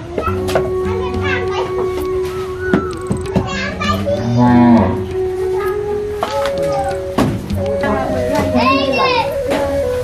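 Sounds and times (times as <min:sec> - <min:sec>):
children's voices: 0:00.0 - 0:07.2, 0:08.2 - 0:09.8.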